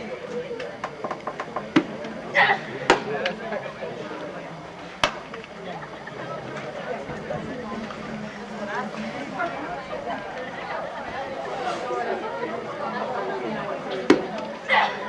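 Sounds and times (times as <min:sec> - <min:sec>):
spectators talking: 0:00.0 - 0:15.0.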